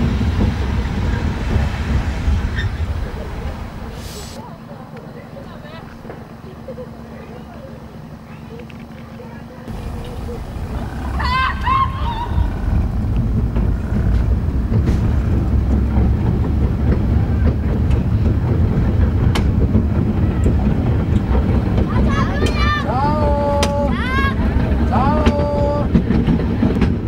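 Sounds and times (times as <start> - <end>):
train wheels rumbling on track: 0.0 - 27.0
wind: 0.0 - 27.0.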